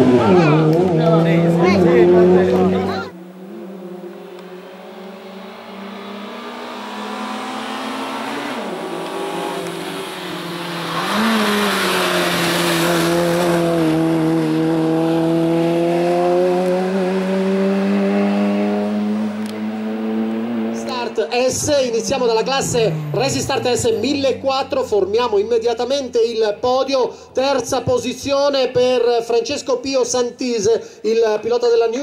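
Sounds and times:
car engine under hard driving: 0.0s - 26.2s.

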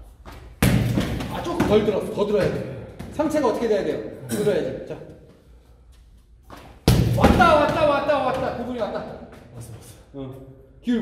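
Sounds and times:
ball kicked with sharp smack: 0.6s - 1.8s, 6.8s - 8.5s.

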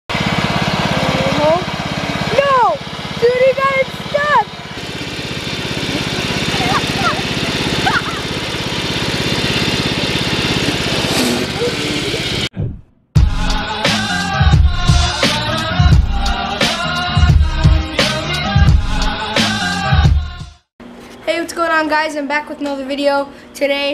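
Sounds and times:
riding lawn mower engine: 0.1s - 12.5s
people shouting: 6.0s - 8.4s.

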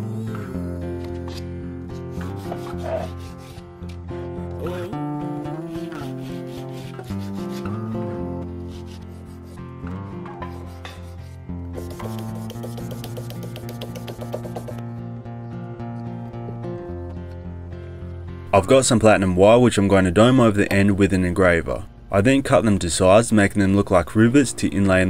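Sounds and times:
background music: 0.0s - 25.0s
abrasive paper sanding handle: 2.1s - 3.6s, 5.5s - 7.9s, 8.6s - 9.7s, 10.5s - 14.8s.

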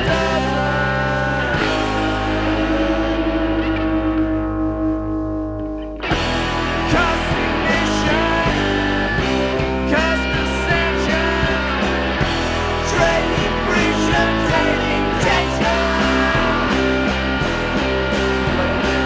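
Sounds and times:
rock band with guitars and drums: 0.0s - 19.0s.

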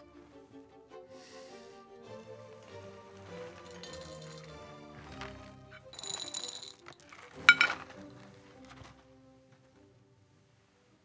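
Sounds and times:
dry cereal rattling: 3.1s - 9.0s
glass clinking on ceramic: 3.5s - 4.6s, 5.8s - 6.9s, 7.5s - 7.8s.

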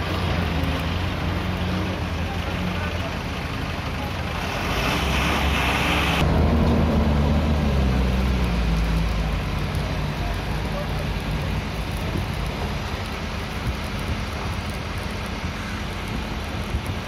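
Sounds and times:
truck diesel engine passing: 0.0s - 11.3s
hissing rush: 0.0s - 17.0s.

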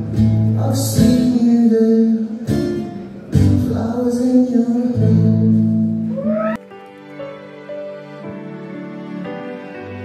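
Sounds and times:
acoustic guitar and singing: 0.0s - 6.5s
soft music with held notes: 0.0s - 10.0s.

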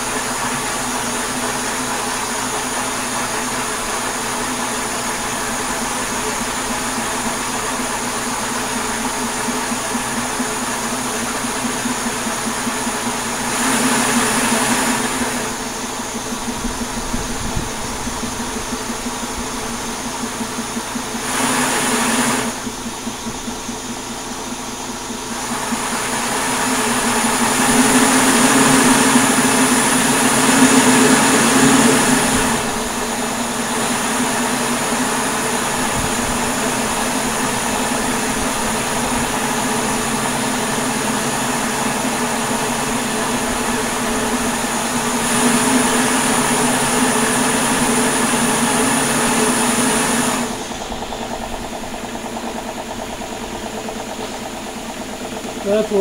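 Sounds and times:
turbine low hum: 0.0s - 56.0s.

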